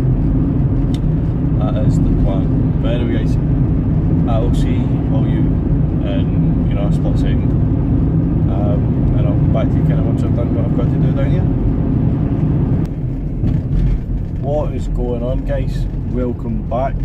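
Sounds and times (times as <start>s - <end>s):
van engine drone: 0.0s - 17.0s
man talking: 1.6s - 3.4s, 4.2s - 7.5s, 8.5s - 11.5s, 14.4s - 17.0s.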